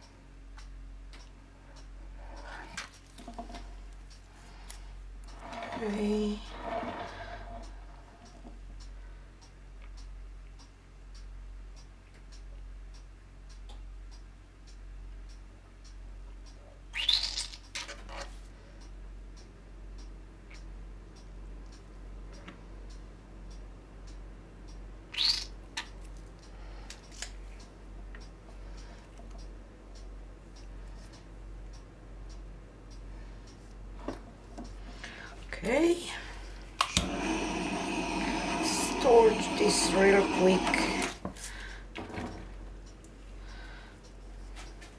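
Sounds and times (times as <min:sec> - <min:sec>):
butane torch clicks: 0:36.8 - 0:41.4
butane torch hissing: 0:37.0 - 0:41.3.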